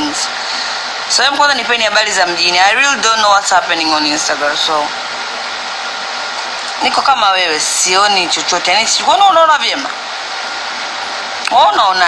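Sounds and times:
steady hiss: 0:00.0 - 0:12.0
person speaking: 0:06.6 - 0:10.0, 0:11.4 - 0:12.0.

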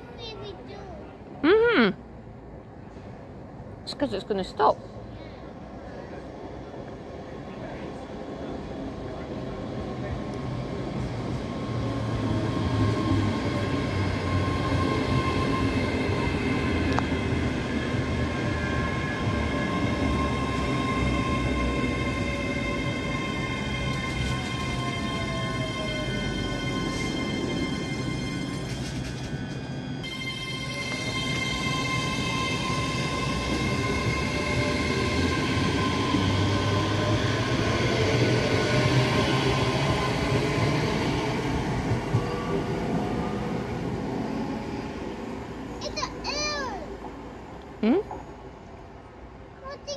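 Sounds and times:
train wheel rumble: 0:02.4 - 0:49.9
electric train whine: 0:02.8 - 0:46.0.

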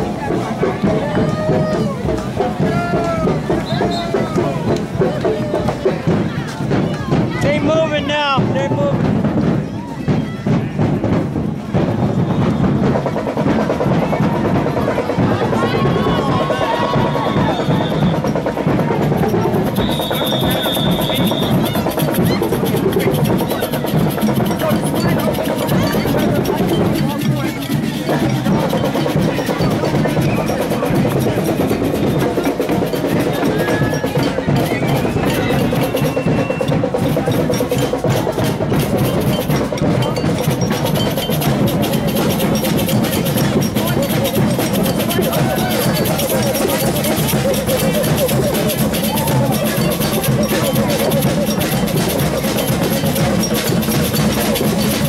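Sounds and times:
crowd chatter: 0:00.0 - 0:55.0
parade drums and percussion: 0:00.0 - 0:55.0.

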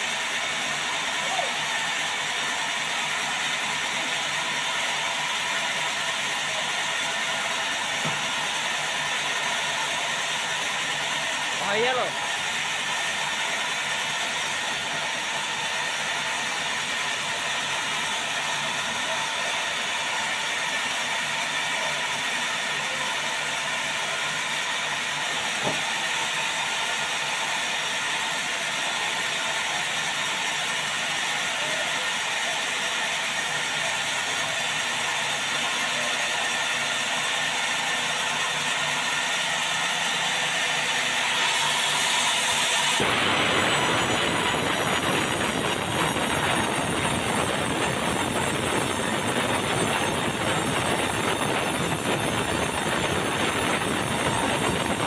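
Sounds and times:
band saw whining: 0:00.0 - 0:55.0
sharp knock: 0:25.6 - 0:25.8.

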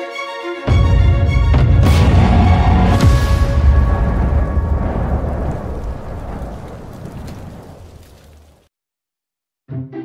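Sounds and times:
deep cinematic boom: 0:01.5 - 0:07.8
low rumble: 0:01.8 - 0:08.6.

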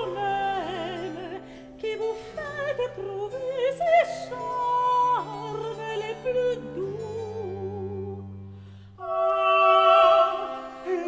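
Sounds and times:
baroque instrumental accompaniment: 0:00.0 - 0:11.0
operatic singing: 0:09.0 - 0:11.0.

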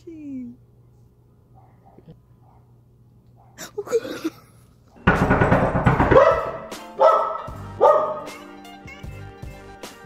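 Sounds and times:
dog barking: 0:01.5 - 0:03.7, 0:06.1 - 0:08.3
background music: 0:05.0 - 0:10.0.

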